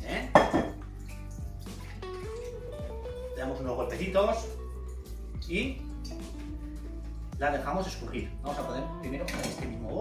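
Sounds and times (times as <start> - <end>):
background music with held notes: 0.0 - 10.0
water dripping into sink: 0.0 - 10.0.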